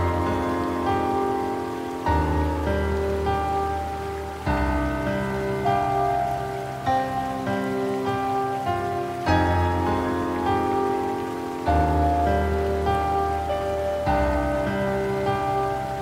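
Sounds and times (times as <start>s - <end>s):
slow soft piano music: 0.0s - 16.0s.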